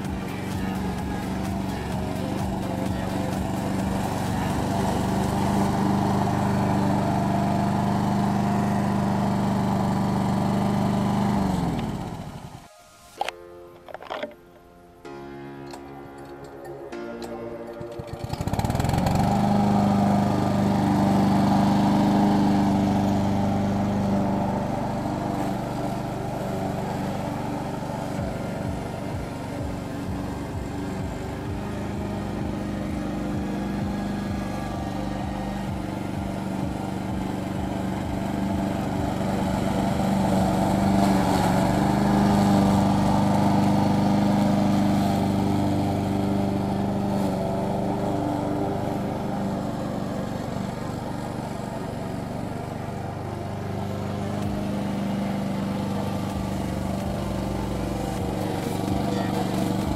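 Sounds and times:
lawn mower engine cutting grass: 0:00.0 - 0:59.9.

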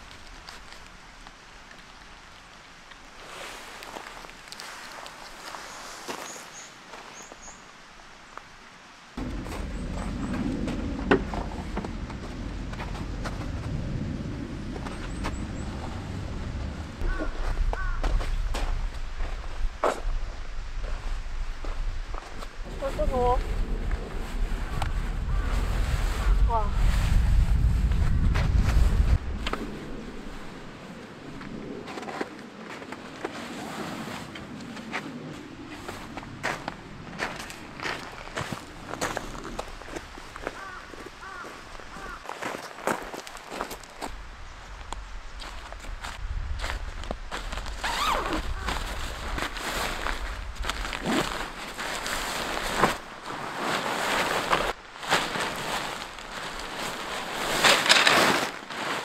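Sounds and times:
footsteps on gravel: 0:09.2 - 0:20.1, 0:35.7 - 0:44.2, 0:45.4 - 0:59.0
tent fabric rustling: 0:20.8 - 0:40.0, 0:45.6 - 0:59.0
bag being opened: 0:47.7 - 0:59.0.

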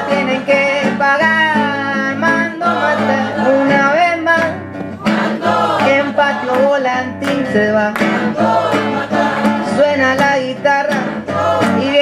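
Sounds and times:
acoustic guitar strumming: 0:00.0 - 0:12.0
person singing: 0:00.0 - 0:12.0.

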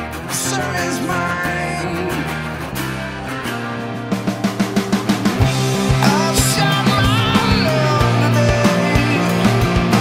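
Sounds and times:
grunge rock with strummed guitars: 0:00.0 - 0:10.0.

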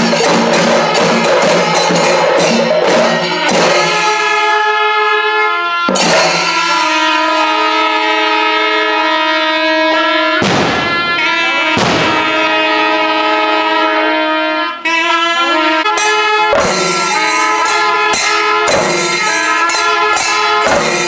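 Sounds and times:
heavy drum strokes: 0:00.0 - 0:04.4, 0:05.9 - 0:07.5, 0:16.5 - 0:21.0
brass horns blaring long notes: 0:00.0 - 0:21.0.

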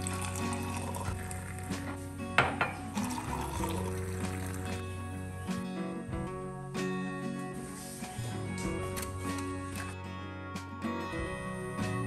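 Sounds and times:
drink pouring into a mug: 0:00.0 - 0:05.1
soft background music: 0:00.0 - 0:12.0.

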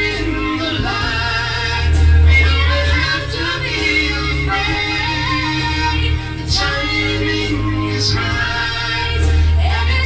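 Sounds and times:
backing track with bass: 0:00.0 - 0:10.0.

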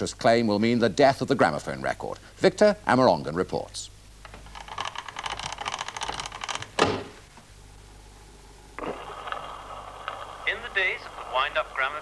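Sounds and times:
rapid clicks: 0:04.2 - 0:06.9
gramophone playing a record: 0:08.8 - 0:12.0.

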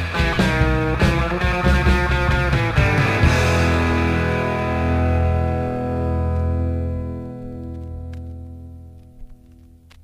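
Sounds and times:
distorted electric guitar chord ringing: 0:00.0 - 0:09.8.

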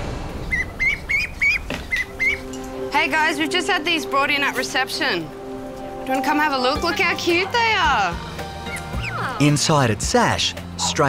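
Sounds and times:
ducklings peeping: 0:00.4 - 0:02.5, 0:08.6 - 0:09.4.

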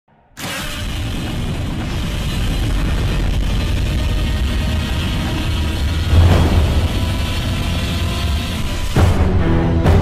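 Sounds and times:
deep continuous rumble: 0:00.6 - 0:09.2.

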